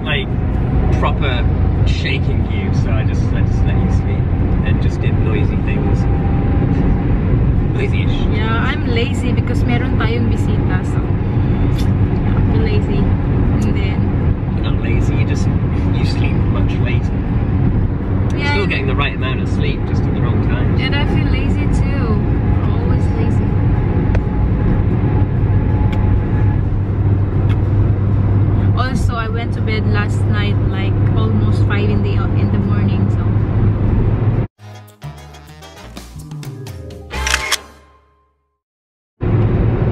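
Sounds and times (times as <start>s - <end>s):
people talking: 0.0s - 0.3s, 1.0s - 6.0s, 7.8s - 11.1s, 12.3s - 14.0s, 14.6s - 17.1s, 18.3s - 23.4s, 28.7s - 33.4s
car interior road drone: 0.0s - 34.5s, 39.2s - 39.9s.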